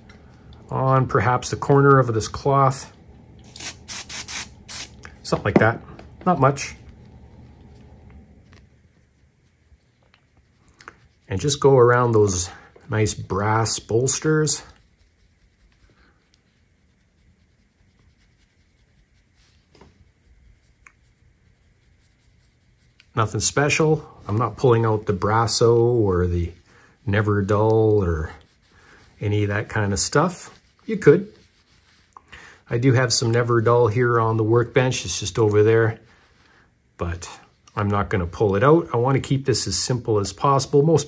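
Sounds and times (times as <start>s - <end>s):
soft scrapes: 0.0s - 37.5s
aerosol can spraying: 3.4s - 5.0s
cloth rubbing on metal: 6.2s - 41.0s.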